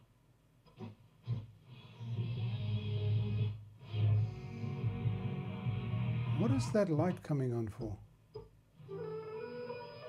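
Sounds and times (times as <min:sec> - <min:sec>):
music from radio loudspeaker: 0:00.7 - 0:07.8, 0:08.8 - 0:10.0.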